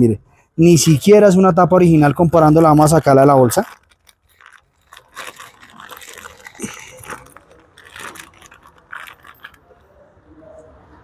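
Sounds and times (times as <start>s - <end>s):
plastic bag crinkling: 1.9s - 9.9s.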